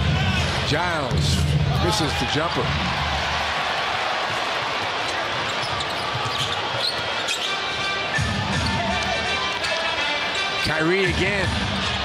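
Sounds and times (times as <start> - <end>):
arena crowd noise: 0.0 - 12.0
sneaker squeaks: 4.9 - 8.8.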